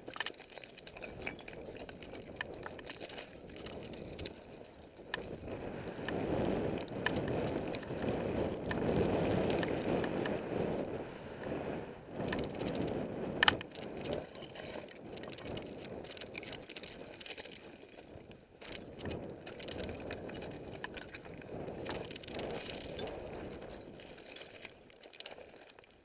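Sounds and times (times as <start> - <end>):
clicks and rattles: 0.0 - 6.2, 6.8 - 10.4, 12.2 - 25.9
bike tyres rumbling over rock: 5.2 - 17.1.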